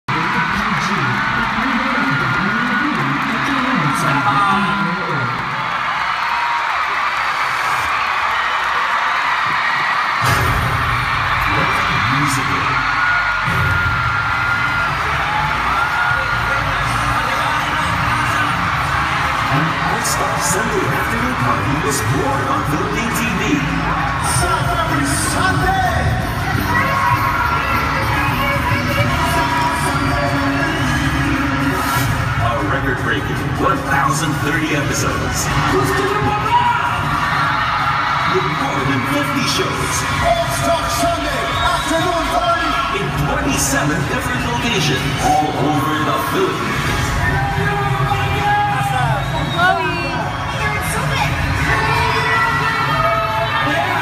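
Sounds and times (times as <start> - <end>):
arena crowd noise: 0.0 - 54.0
crowd screams: 0.1 - 54.0
music over loudspeakers: 9.5 - 54.0.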